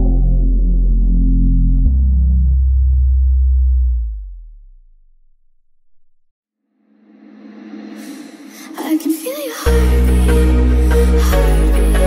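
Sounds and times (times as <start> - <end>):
deep sub-bass note: 0.0 - 6.3.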